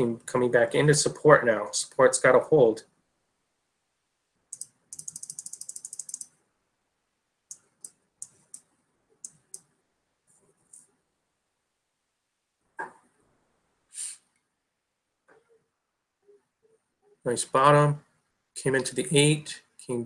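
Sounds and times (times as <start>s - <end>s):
computer mouse clicks: 4.5s - 6.3s, 7.5s - 9.7s
computer mouse scroll wheel: 4.5s - 6.3s.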